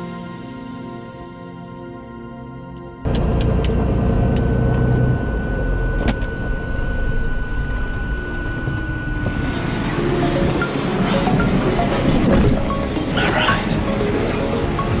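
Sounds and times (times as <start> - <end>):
soft background music: 0.0 - 3.2, 9.2 - 15.0
steady high whine: 0.0 - 15.0
aircraft engine low rumble: 3.0 - 13.0.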